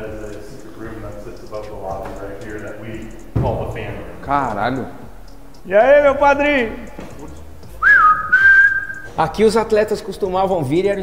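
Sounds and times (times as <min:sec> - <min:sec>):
person whistling: 0:07.8 - 0:09.1.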